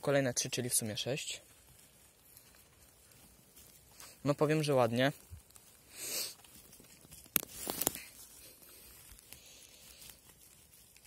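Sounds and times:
dry twigs crackling and rustling: 0:00.0 - 0:11.0
faint forest background: 0:00.0 - 0:11.0.

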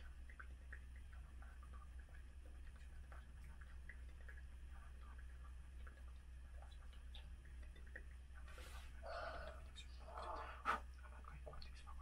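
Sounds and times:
man whispering: 0:09.4 - 0:12.0.

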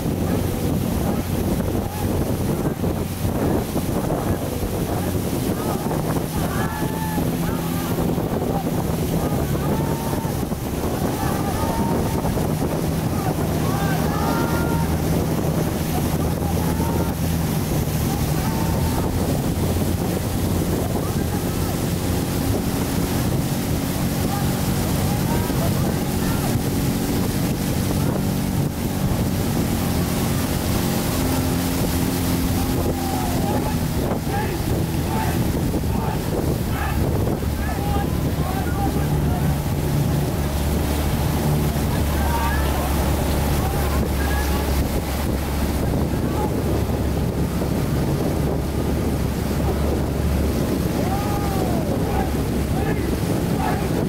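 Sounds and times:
boat engine running: 0:00.0 - 0:54.0
wind buffeting microphone: 0:00.0 - 0:54.0
voices shouting and calling: 0:00.1 - 0:54.0.

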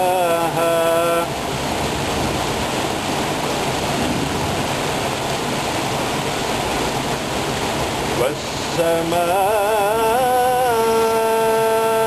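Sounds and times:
waterfall pouring into a pool: 0:00.0 - 0:12.0.

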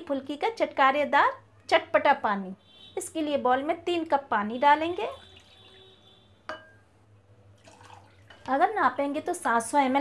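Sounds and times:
water pouring into a glass bowl: 0:05.1 - 0:06.0, 0:07.6 - 0:08.5.

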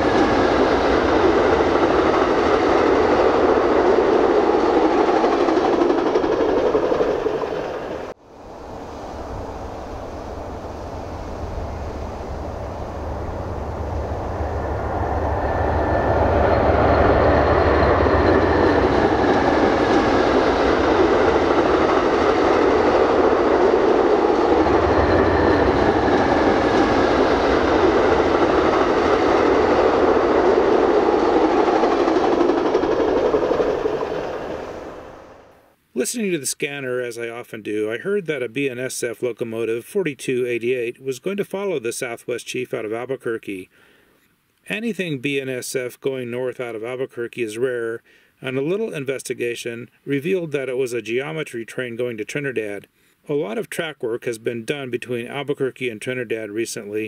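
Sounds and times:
train rolling past on rails: 0:00.0 - 0:35.8.

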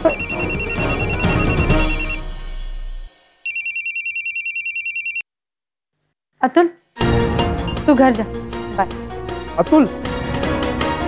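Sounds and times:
mobile phone ringing: 0:00.0 - 0:02.2, 0:03.5 - 0:05.2.

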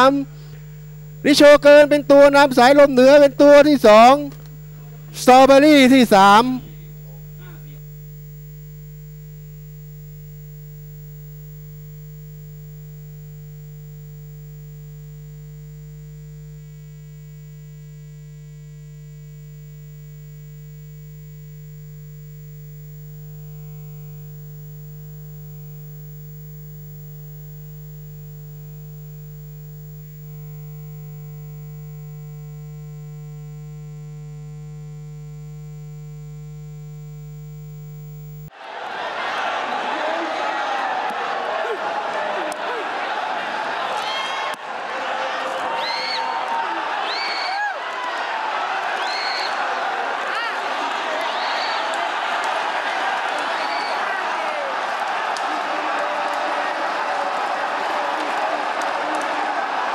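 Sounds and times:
faint steady tones: 0:00.0 - 0:38.5
electrical mains hum: 0:00.0 - 0:38.6.

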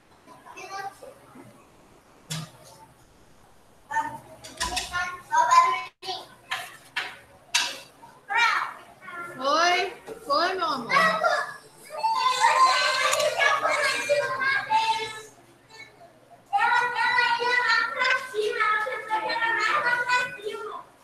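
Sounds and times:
children talking and shouting: 0:00.3 - 0:01.5, 0:03.8 - 0:21.0
children's high squeals: 0:11.8 - 0:14.4.

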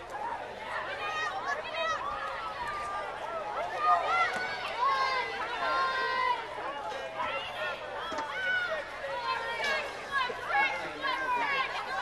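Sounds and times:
spectators talking and calling out: 0:00.0 - 0:12.0.

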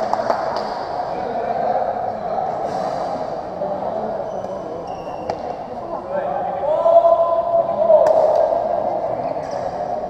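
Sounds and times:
crowd voices in large hall: 0:00.0 - 0:10.0.

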